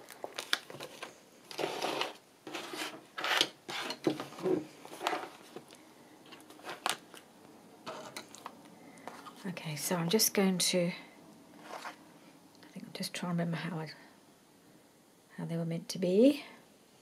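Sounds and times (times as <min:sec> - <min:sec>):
stiff paper pages rustling: 0:00.0 - 0:07.2.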